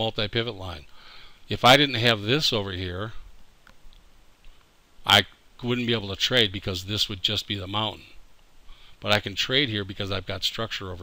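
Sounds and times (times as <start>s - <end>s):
person speaking: 0.0s - 3.3s, 5.0s - 8.3s, 9.0s - 11.0s.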